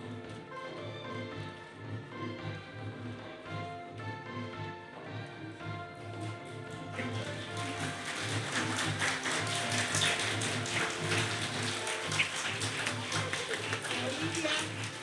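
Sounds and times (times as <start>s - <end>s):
background music: 0.0s - 15.0s
audience applauding: 6.2s - 15.0s.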